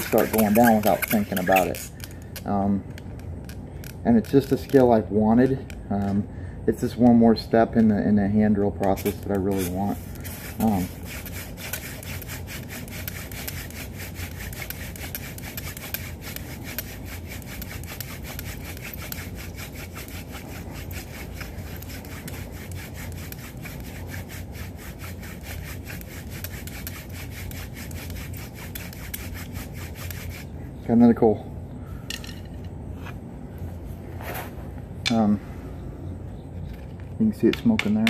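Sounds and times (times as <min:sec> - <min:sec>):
wood rubbing on wood: 0:00.0 - 0:05.0, 0:08.8 - 0:30.5.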